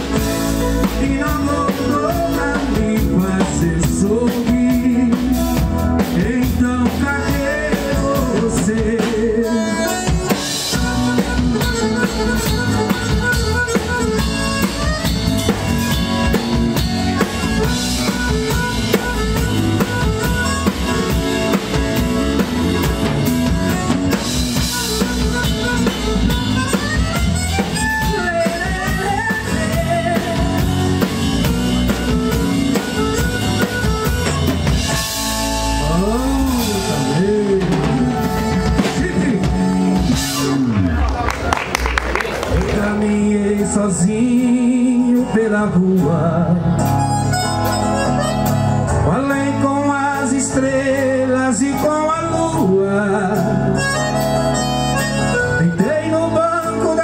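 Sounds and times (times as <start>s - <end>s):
piano accordion: 0.0s - 40.3s, 43.4s - 57.0s
acoustic guitar: 0.0s - 41.0s, 42.3s - 57.0s
drum kit: 0.0s - 57.0s
electric bass: 0.0s - 57.0s.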